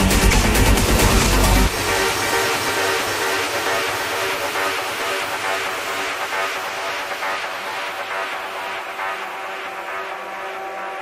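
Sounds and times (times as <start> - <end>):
trance synthesizer pad chords: 0.0 - 11.0.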